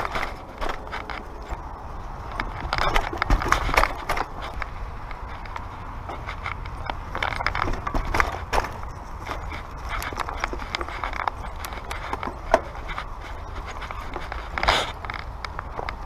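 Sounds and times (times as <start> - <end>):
bike rattling: 0.0 - 16.0
steady low rumble: 0.0 - 16.0.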